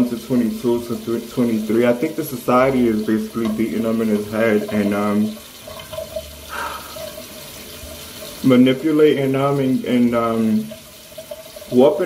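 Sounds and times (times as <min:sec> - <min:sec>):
tap running into sink: 0:00.8 - 0:06.3.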